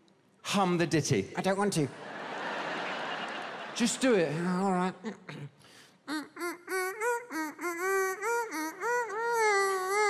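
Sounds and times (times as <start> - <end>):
man humming a tune: 4.4 - 10.0.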